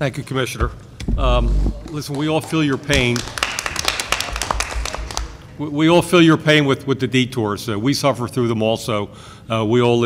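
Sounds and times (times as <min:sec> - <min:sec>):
audience clapping: 0:01.7 - 0:05.5.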